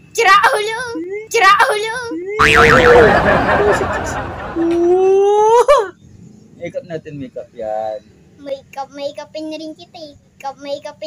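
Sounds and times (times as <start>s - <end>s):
cartoon boing sound effect: 2.4s - 3.8s
loud noisy burst: 2.4s - 4.6s.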